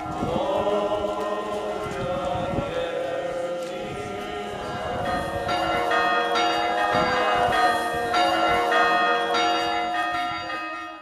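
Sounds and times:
church bells ringing: 0.0s - 2.0s, 2.8s - 11.0s.

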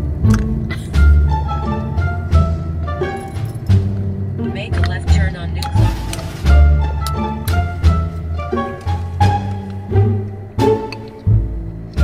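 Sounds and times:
plucked notes over heavy bass: 0.0s - 12.0s
person speaking: 4.4s - 5.9s.

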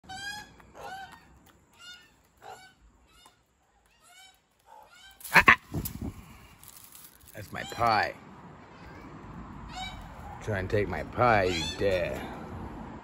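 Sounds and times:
magpies calling: 9.6s - 10.6s, 11.2s - 12.2s.

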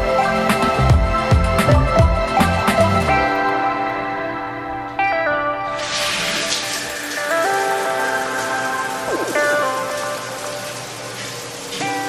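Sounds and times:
background music: 0.0s - 12.0s
shower water running: 5.7s - 12.0s.

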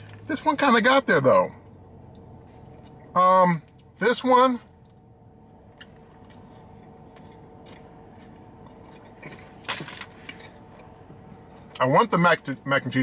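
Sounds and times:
faint steady hum: 0.0s - 13.0s
person chewing food: 4.8s - 11.8s.

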